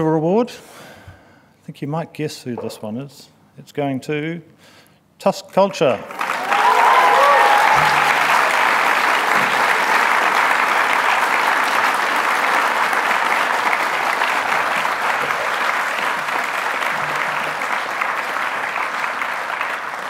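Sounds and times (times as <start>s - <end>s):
audience applauding: 6.1s - 20.0s.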